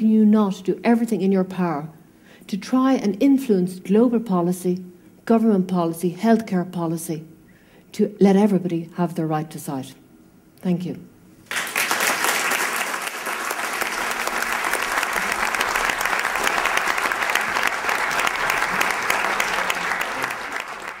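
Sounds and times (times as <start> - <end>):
audience applauding: 11.5 - 21.0.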